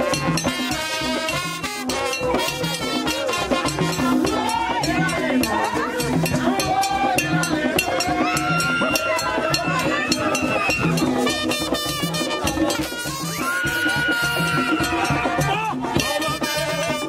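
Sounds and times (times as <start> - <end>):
drums beating steadily: 0.0 - 17.0
group singing: 1.9 - 11.4.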